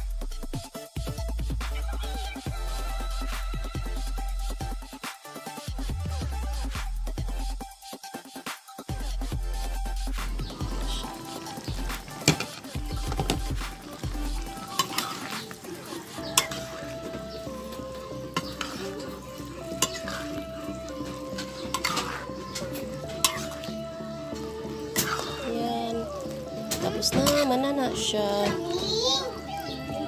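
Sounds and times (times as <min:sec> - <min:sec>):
faint background music: 0:00.0 - 0:30.0
metal spoon scraping a pan: 0:10.7 - 0:23.7, 0:24.9 - 0:25.5.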